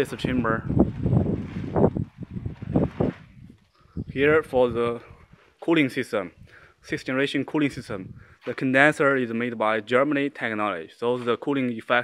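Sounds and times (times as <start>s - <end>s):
wind buffeting phone microphone: 0.0s - 5.5s, 6.3s - 7.0s, 7.6s - 8.4s.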